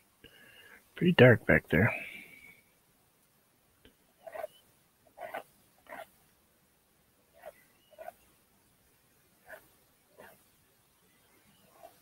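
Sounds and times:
palette knife scraping canvas: 0:04.2 - 0:04.6, 0:05.2 - 0:06.1, 0:07.4 - 0:08.2.

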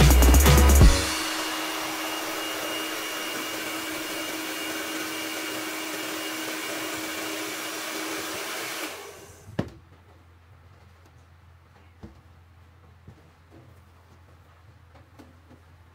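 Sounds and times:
hair dryer running: 0:00.0 - 0:09.5.

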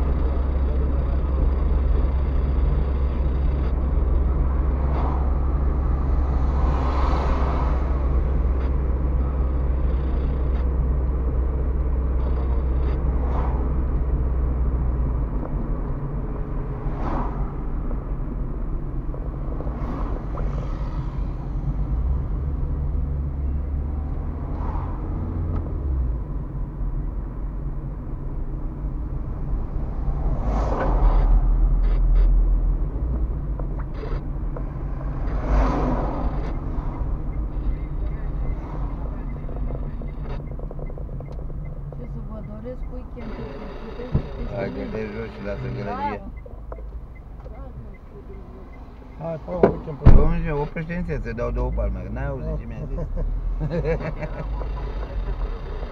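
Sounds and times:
car engine hum: 0:00.0 - 0:55.9
passing traffic: 0:00.0 - 0:55.9.

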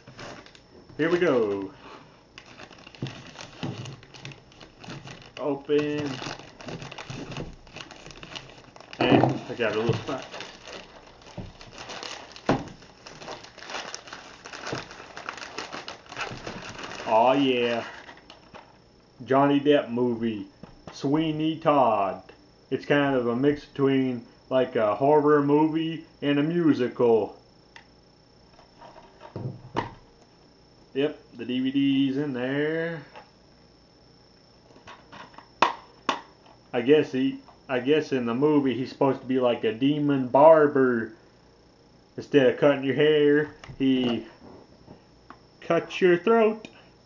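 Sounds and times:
plastic bag crinkling: 0:00.0 - 0:18.7.

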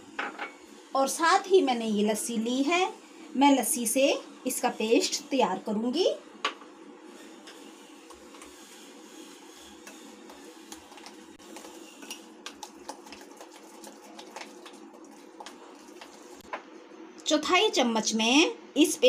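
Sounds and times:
low background hum: 0:00.0 - 0:19.0
spoon stirring paste in glass bowl: 0:10.3 - 0:16.4.

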